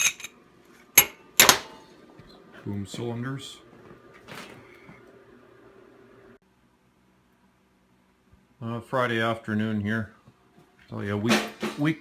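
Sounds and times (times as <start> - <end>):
faint steady hum: 0.0 - 11.2.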